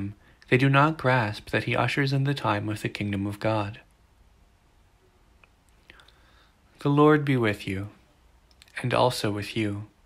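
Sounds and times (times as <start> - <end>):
man speaking: 0.0 - 3.9, 6.8 - 8.0, 8.6 - 10.0
soft breath: 5.8 - 6.8.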